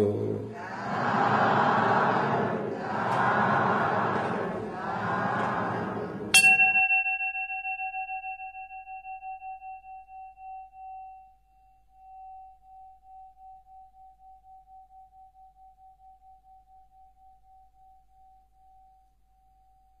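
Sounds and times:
metallic bell-like ringing tone: 0:06.3 - 0:20.0.

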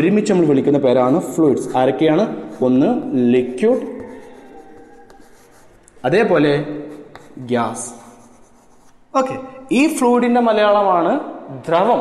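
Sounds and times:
chalk scratching on a chalkboard: 0:01.6 - 0:09.1
chalk tapping on a board: 0:02.3 - 0:06.0, 0:06.8 - 0:09.0.

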